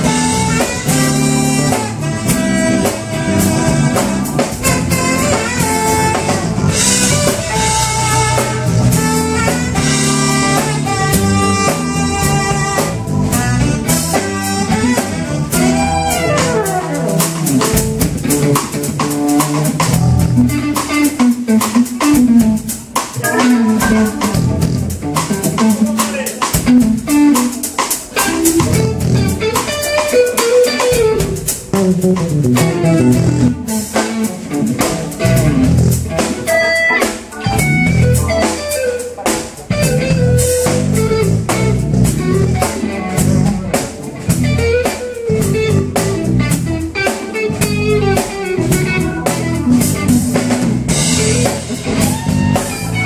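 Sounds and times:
saxophone melody: 0.0 - 17.3, 23.2 - 25.7, 28.2 - 35.6, 39.7 - 43.7, 44.4 - 53.0
drum kit: 0.0 - 53.0
electric guitar: 0.0 - 53.0.

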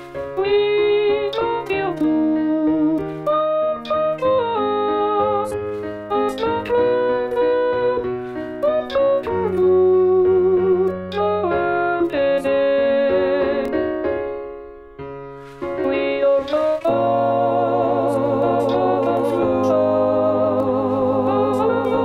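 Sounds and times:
synthesized piano: 0.0 - 22.0
synthesized alto melody: 0.1 - 22.0
sustained choir chords: 16.5 - 22.0.

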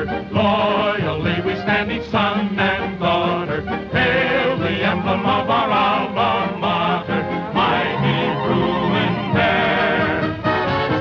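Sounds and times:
male vocal quartet singing in harmony: 0.0 - 10.7.

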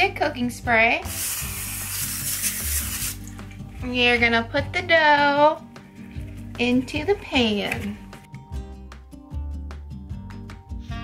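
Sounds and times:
background music: 0.0 - 11.0
aerosol spray hissing: 1.1 - 3.3.

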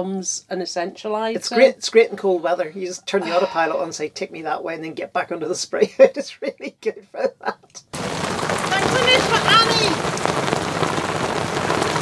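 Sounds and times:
heavy rain on a boat: 8.0 - 12.0.

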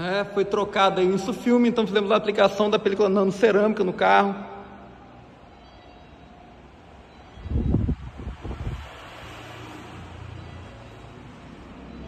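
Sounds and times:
wind buffeting microphone: 7.3 - 9.2.

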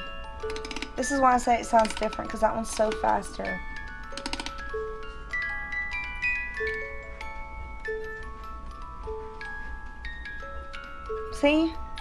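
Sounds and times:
music box playing slow tune: 0.0 - 12.0.

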